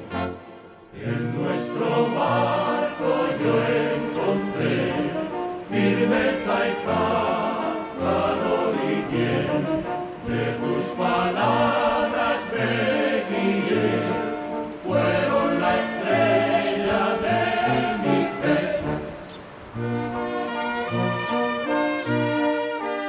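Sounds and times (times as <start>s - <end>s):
choir singing: 0.0s - 21.8s.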